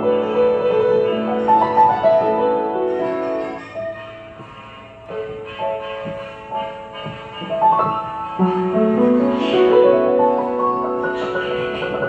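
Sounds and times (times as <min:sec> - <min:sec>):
solo piano chords: 0:00.0 - 0:12.0.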